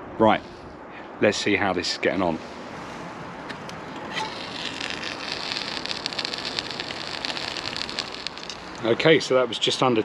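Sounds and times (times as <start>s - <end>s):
food sizzling in hot oil: 4.2s - 8.8s.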